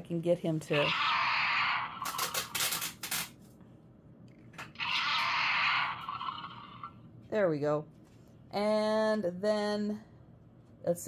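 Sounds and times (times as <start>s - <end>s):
toy dinosaur roar: 0.7s - 2.6s, 4.7s - 7.0s
toy clicking and rustling: 1.9s - 3.3s.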